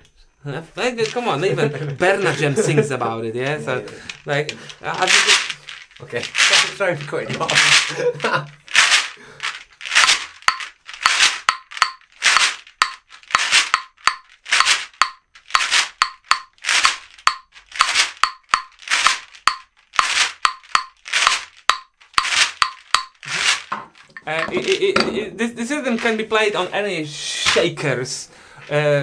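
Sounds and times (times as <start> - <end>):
claves clicking: 0.8 - 2.7, 3.4 - 25.2
shaker swishing rhythm: 4.1 - 25.0.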